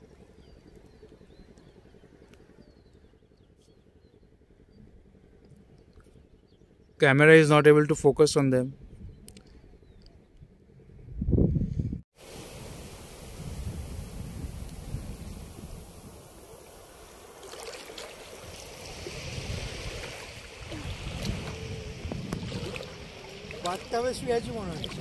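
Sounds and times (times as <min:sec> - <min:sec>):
wind buffeting microphone: 0:08.7 - 0:17.2, 0:18.2 - 0:25.0
sea water lapping and sloshing: 0:16.4 - 0:25.0.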